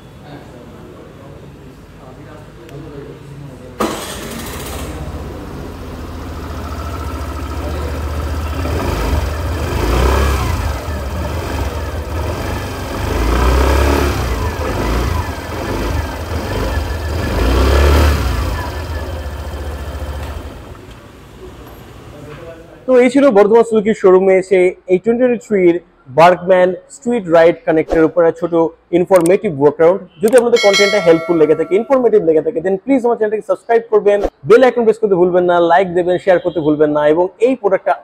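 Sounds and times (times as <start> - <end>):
scooter engine idling and revving: 3.8 - 22.3.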